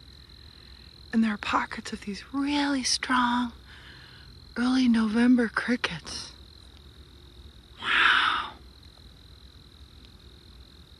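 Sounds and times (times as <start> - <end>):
crickets trilling: 0.0 - 10.9.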